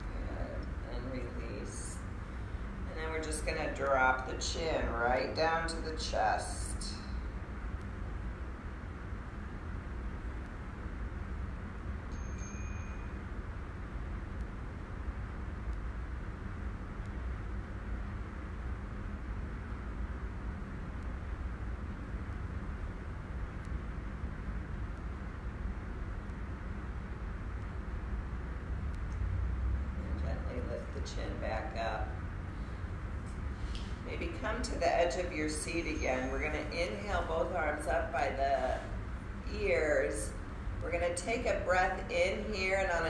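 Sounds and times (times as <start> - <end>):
low rumble and hiss: 0.0 - 43.0.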